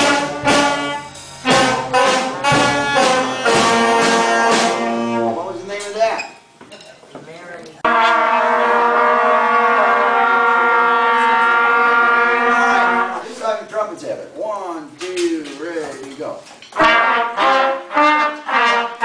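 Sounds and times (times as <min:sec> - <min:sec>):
concert band holding a chord: 0:00.0 - 0:05.4.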